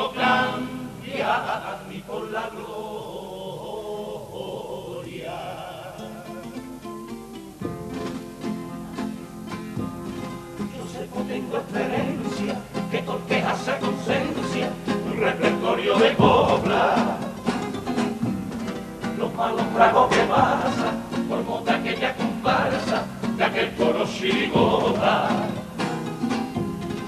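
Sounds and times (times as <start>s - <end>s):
male chorus singing in harmony: 0.0s - 6.6s, 10.6s - 17.9s, 19.0s - 26.0s
guitar strumming: 6.0s - 27.0s.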